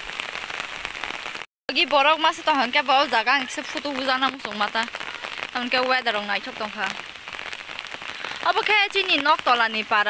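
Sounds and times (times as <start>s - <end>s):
rain pattering on pond: 0.0s - 10.0s.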